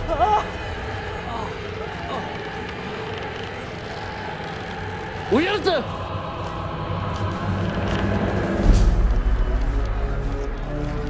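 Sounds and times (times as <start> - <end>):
rumbling ambient noise: 0.0 - 11.0.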